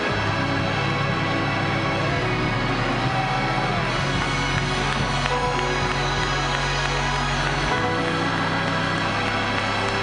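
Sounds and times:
gospel church music held chords: 0.0 - 10.0.

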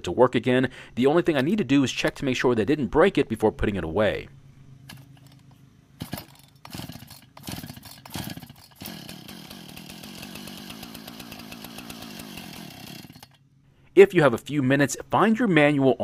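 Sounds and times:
chainsaw starter rope pulled: 4.9 - 13.4
engine turning over: 4.9 - 13.4.

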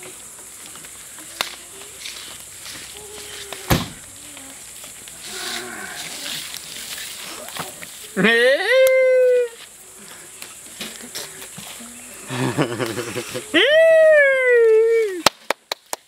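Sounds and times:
person humming and murmuring: 2.9 - 6.5.

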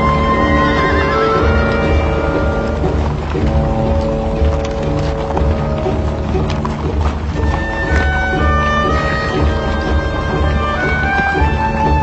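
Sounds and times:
horse whinnying: 0.0 - 4.3
loud background music: 0.0 - 12.0.

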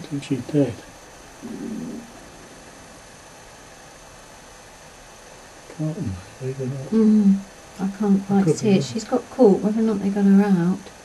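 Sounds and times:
faint low hum: 0.0 - 11.0
steady hiss: 0.0 - 11.0.

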